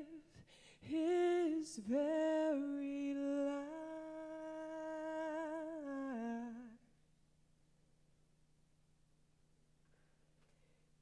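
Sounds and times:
woman singing unaccompanied: 0:00.0 - 0:06.9.

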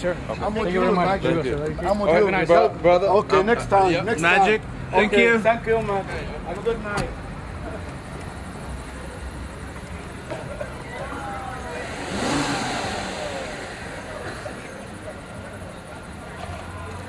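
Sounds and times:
car engine pulling away: 0:09.6 - 0:17.0.

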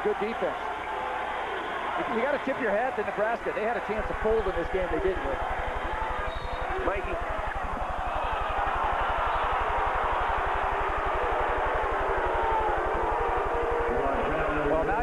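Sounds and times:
crowd cheering and shouting: 0:00.0 - 0:15.0.

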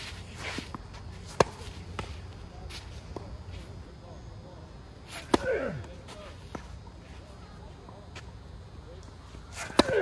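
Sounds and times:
tennis racket hitting ball: 0:00.6 - 0:02.1, 0:09.6 - 0:10.0.

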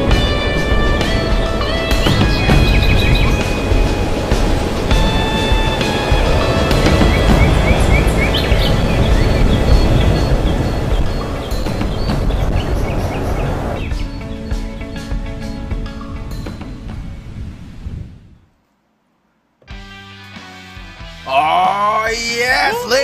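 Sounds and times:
heavy low end: 0:00.0 - 0:12.9.

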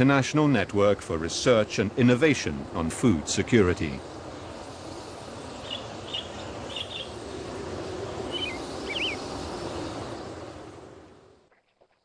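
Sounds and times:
steady background hiss: 0:00.0 - 0:12.0
bird chirps: 0:05.5 - 0:07.2, 0:08.3 - 0:09.4.

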